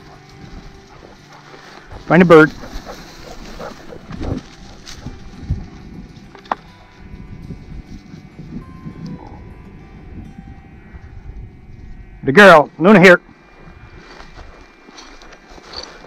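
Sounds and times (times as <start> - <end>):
wind rumbling on microphone: 1.9 - 12.3, 13.2 - 14.7.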